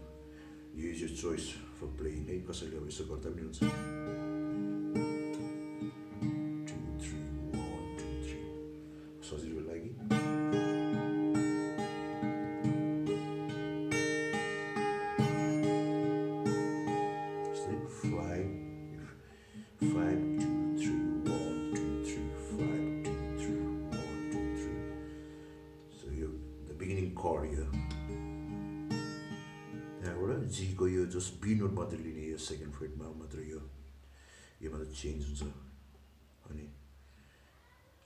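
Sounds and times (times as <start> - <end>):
fingerpicked acoustic guitar: 0.0 - 37.8.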